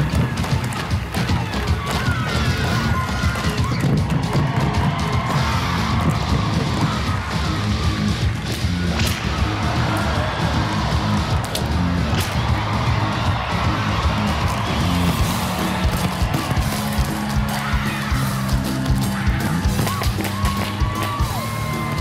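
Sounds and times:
backing music: 0:00.0 - 0:22.0
drums beaten fast and hard: 0:00.0 - 0:22.0.

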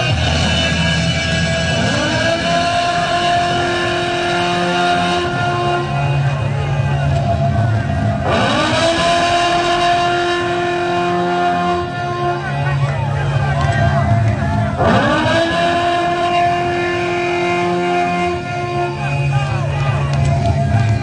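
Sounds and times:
steady low bass: 0:00.0 - 0:21.0.

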